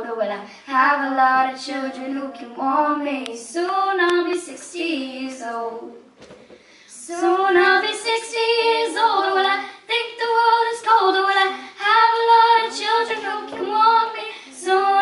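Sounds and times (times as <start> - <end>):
girls singing: 0.0 - 6.2, 6.9 - 15.0.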